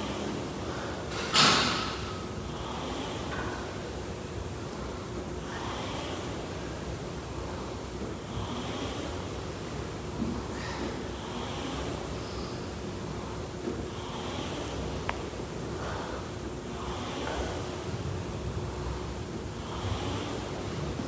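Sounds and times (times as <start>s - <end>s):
ventilation rushing noise: 0.0s - 21.0s.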